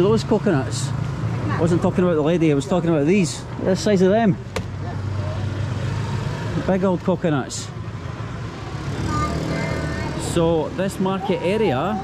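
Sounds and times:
busy market street ambience: 0.0s - 12.0s.

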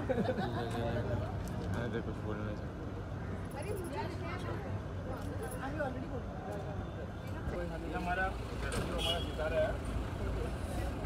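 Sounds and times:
low rumble of vehicle engines: 0.0s - 11.0s.

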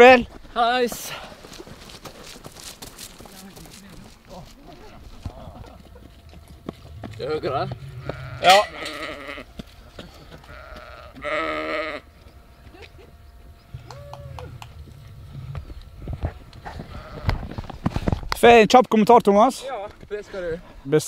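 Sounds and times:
sheep bleating: 6.9s - 9.6s, 10.2s - 12.1s, 15.3s - 17.6s.

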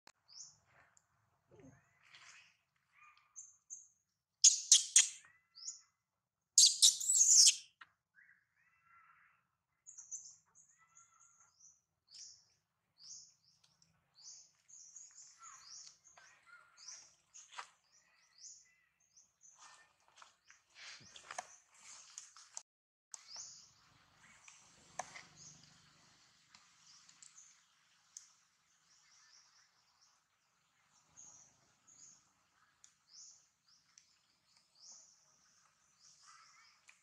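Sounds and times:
harsh bird calling: 4.4s - 5.2s, 6.6s - 7.6s
birds chirping: 4.4s - 5.9s, 6.6s - 19.7s.

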